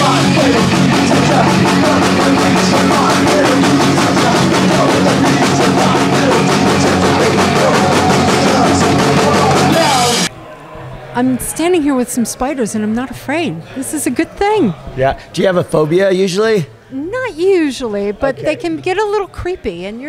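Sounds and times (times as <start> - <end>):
bass guitar: 0.0 - 10.3
drums: 0.0 - 10.3
electric guitar: 0.0 - 10.3
person singing into a microphone: 0.0 - 10.3.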